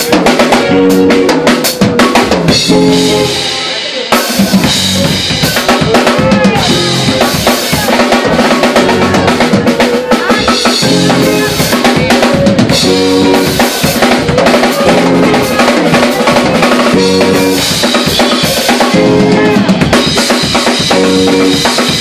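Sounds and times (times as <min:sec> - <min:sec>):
drum kit beat: 0:00.0 - 0:22.0
electric guitar: 0:00.0 - 0:22.0.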